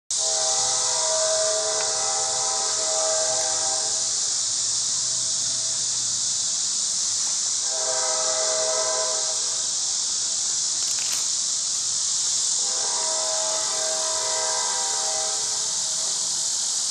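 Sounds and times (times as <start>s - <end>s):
multi-toned horn blast: 0.1s - 4.2s, 7.6s - 9.6s, 12.6s - 16.3s
high-pitched hiss: 0.1s - 16.9s.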